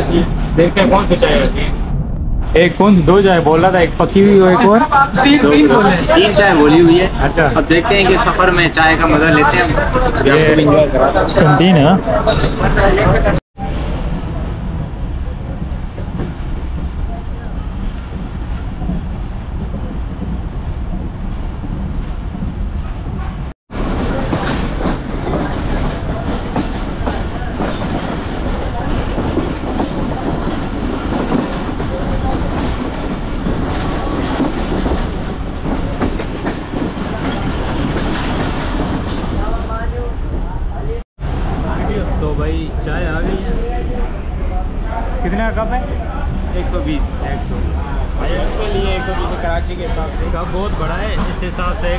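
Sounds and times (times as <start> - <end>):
train wheels rumbling on rails: 0.0 - 51.9.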